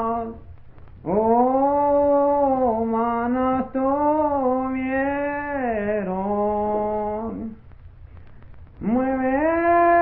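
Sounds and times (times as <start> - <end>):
man singing unaccompanied hymn: 0.0 - 7.8, 8.7 - 10.0
low record rumble: 0.0 - 10.0.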